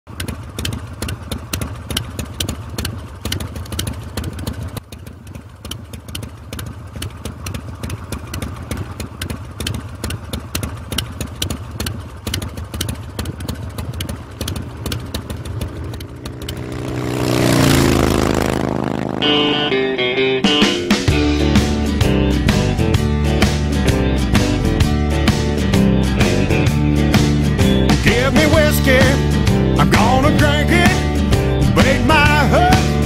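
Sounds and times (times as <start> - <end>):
motorcycle engine idling: 0.1 - 33.0.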